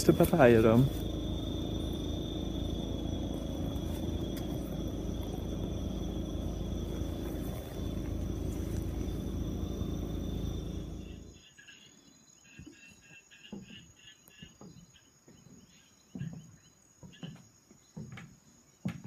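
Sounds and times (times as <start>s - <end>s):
low outdoor rumble: 0.0s - 11.4s
high-pitched insect calls: 0.0s - 14.8s.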